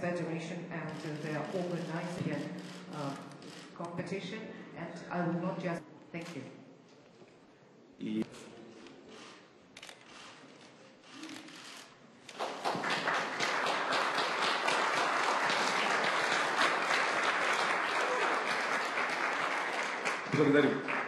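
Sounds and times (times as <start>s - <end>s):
audience applauding: 12.3s - 21.0s.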